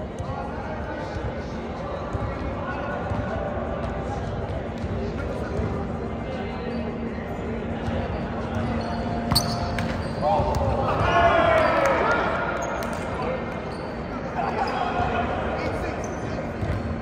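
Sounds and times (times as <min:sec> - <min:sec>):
players shouting: 0:10.2 - 0:12.7.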